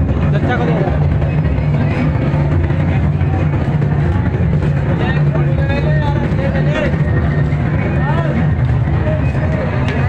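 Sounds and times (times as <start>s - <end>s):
crowd voices: 0.0s - 10.0s
loud steady low drone: 0.0s - 10.0s.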